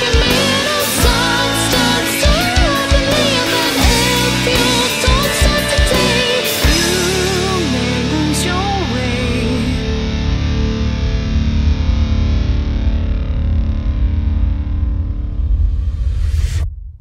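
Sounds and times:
distorted electric guitar chord: 0:00.0 - 0:15.8.

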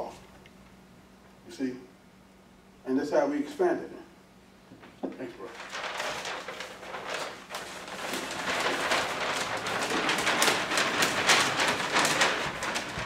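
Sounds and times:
paper map rustling and crackling: 0:04.8 - 0:13.0.

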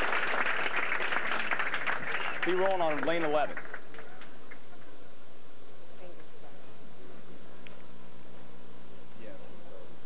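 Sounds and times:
tape hiss with high whine: 0:00.0 - 0:10.0.

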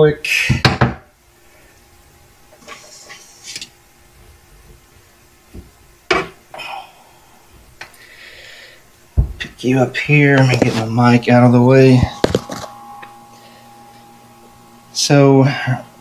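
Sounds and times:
camera handling knocks and rustles: 0:12.2 - 0:12.7.

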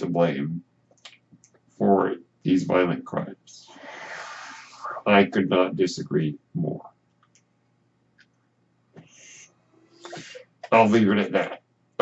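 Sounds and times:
ventilator airy hiss: 0:03.6 - 0:05.3.

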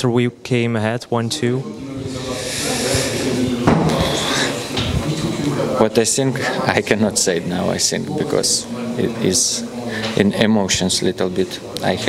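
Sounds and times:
faint voices: 0:01.1 - 0:12.0
steady hiss: 0:02.1 - 0:04.8.

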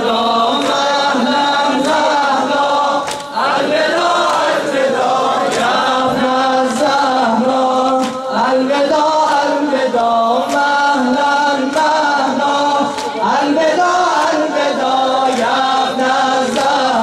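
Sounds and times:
man chanting a lament: 0:00.0 - 0:17.0
chest-beating slaps: 0:03.0 - 0:03.4, 0:04.2 - 0:04.7, 0:05.4 - 0:05.8, 0:07.9 - 0:08.3, 0:15.2 - 0:15.7.

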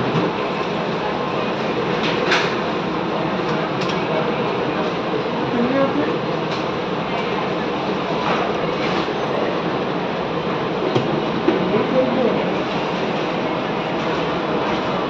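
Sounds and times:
faint voices: 0:03.0 - 0:15.0.

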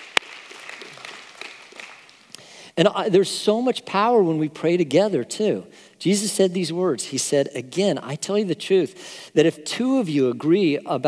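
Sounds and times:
faint applause: 0:00.0 - 0:02.2
sharp hand clap: 0:00.0 - 0:02.4.

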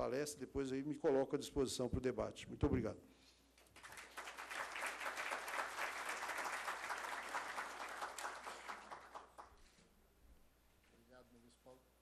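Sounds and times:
audience applauding: 0:03.8 - 0:09.6.

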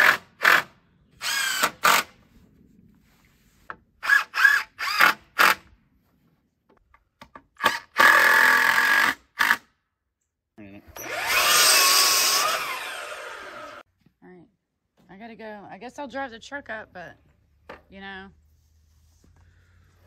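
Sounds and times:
electric power tool running: 0:10.9 - 0:13.8.

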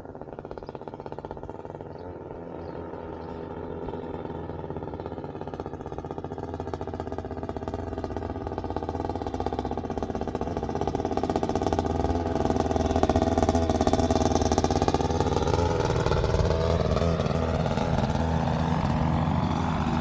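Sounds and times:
paramotor engine and propeller: 0:00.0 - 0:20.0.

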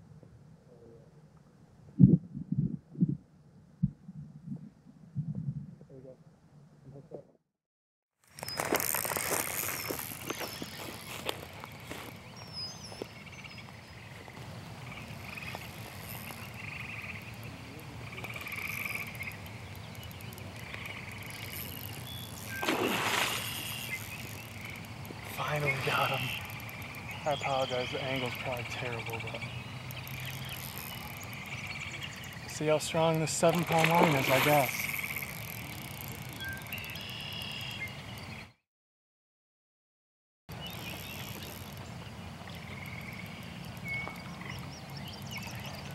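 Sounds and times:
faint outdoor background noise: 0:08.2 - 0:38.6, 0:40.5 - 0:45.9
frogs trilling: 0:08.3 - 0:38.5, 0:40.5 - 0:45.9
bird chirps: 0:36.0 - 0:38.6.

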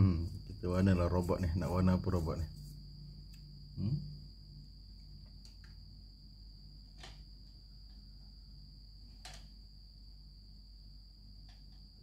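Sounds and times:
faint high-pitched whine: 0:00.0 - 0:12.0
person murmuring: 0:03.8 - 0:04.2.

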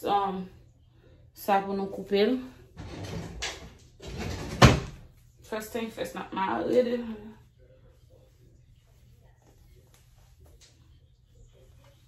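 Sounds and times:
rustling movement noise: 0:01.6 - 0:12.0.

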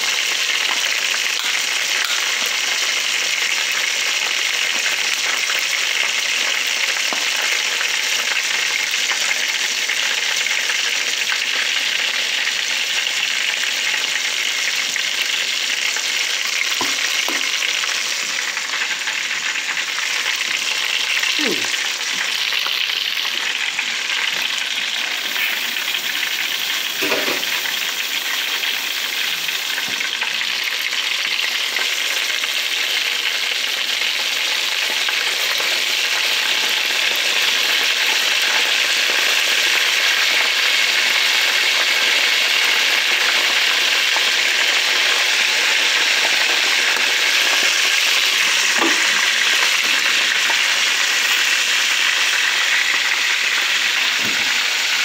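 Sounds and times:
chicken wings sizzling in oil: 0:00.0 - 0:55.0.

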